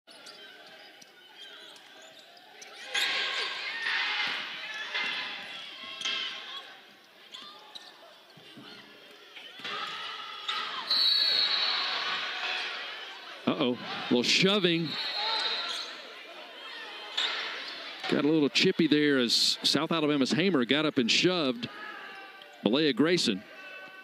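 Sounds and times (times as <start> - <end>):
sneakers squeaking: 0.1 - 12.7, 14.8 - 16.1
players calling out: 0.2 - 24.0.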